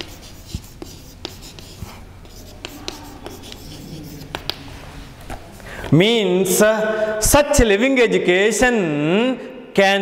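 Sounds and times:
chalk tapping and scratching: 0.0 - 4.8.

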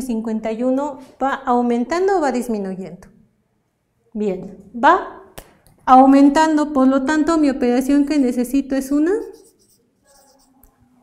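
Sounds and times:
marker scratching on paper: 9.0 - 10.8.

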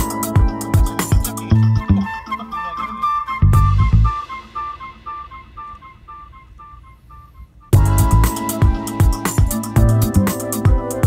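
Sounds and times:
background music with high notes: 0.0 - 11.0.

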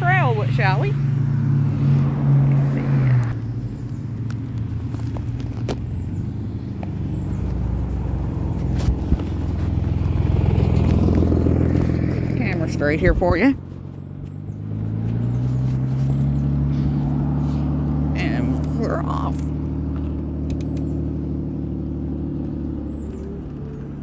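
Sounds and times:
car engine running: 0.0 - 24.0
wind rumble on microphone: 1.9 - 16.4.

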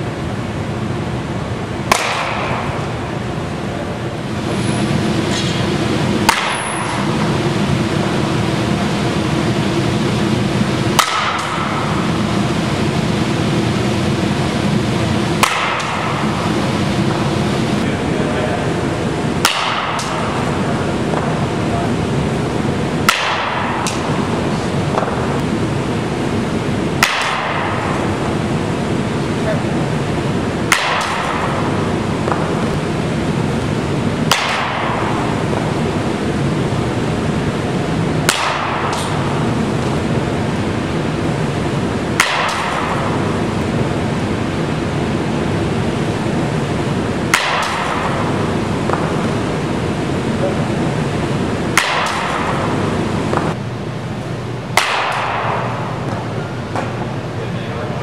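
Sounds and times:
steady background noise: 0.0 - 58.0
bat hitting softballs: 1.8 - 3.0, 5.3 - 7.6, 10.0 - 12.3, 15.2 - 17.6, 19.2 - 21.6, 22.9 - 25.5, 26.9 - 28.4, 30.6 - 32.9, 34.2 - 35.9, 38.1 - 40.2, 42.0 - 44.0, 47.2 - 49.5, 51.6 - 53.6, 54.7 - 57.1.

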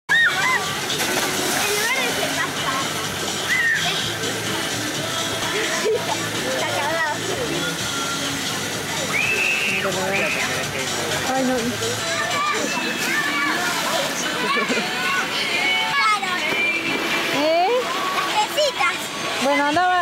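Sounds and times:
children shouting and squealing: 0.1 - 0.8, 1.5 - 4.2, 12.0 - 16.9
water rushing and splashing: 0.1 - 20.0.

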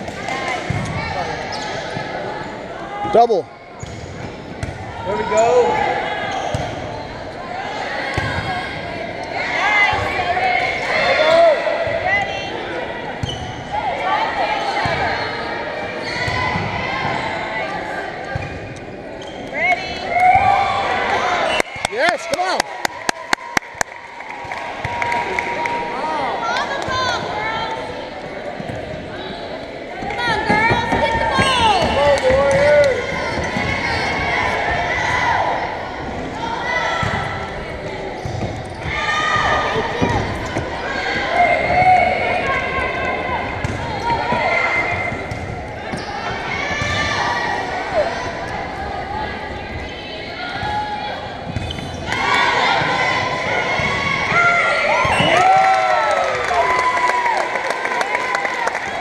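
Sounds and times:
players and spectators shouting: 4.8 - 18.4, 19.6 - 59.0.

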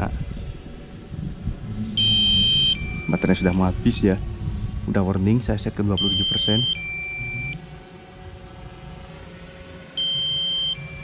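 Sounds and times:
high warning beep: 2.0 - 3.6, 6.0 - 7.6, 10.0 - 11.0
two-tone beep: 2.0 - 3.6, 6.0 - 7.6, 10.0 - 11.0.

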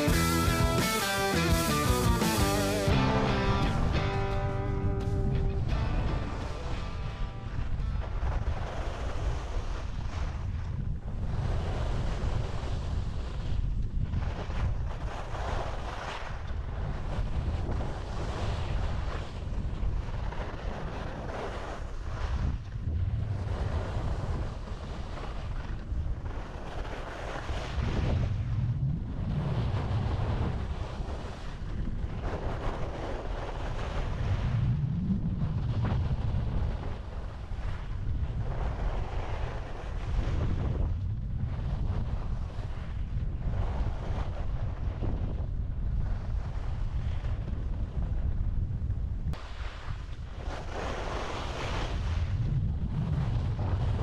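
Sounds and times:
wind on microphone: 0.0 - 54.0.

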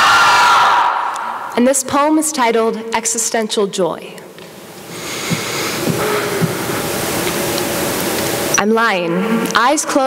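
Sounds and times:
steady hiss-like noise: 0.0 - 10.0
soft low thumps: 5.2 - 7.5.

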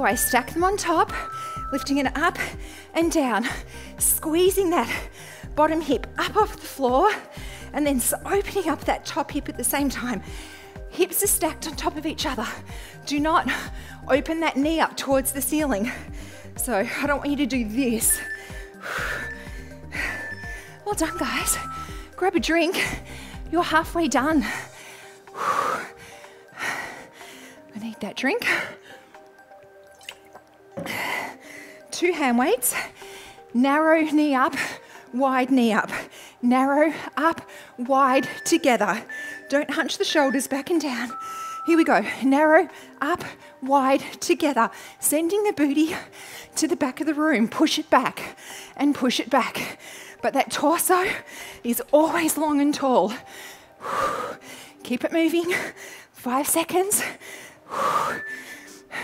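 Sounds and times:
soft background music: 0.0 - 59.0.

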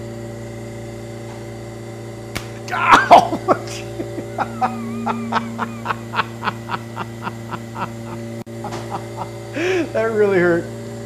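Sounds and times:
lab equipment hum: 0.0 - 11.0
man saying oh: 2.6 - 4.6
man laughing breathily: 2.7 - 10.0.

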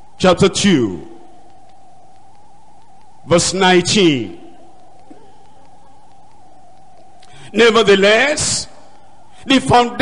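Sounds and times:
low hiss: 0.0 - 10.0
steady mid-pitch tone: 0.0 - 10.0.

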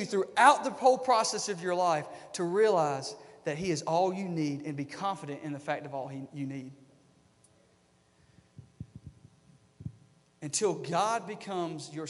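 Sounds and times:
faint hum: 0.0 - 12.0
soft low thumps: 8.6 - 10.1.

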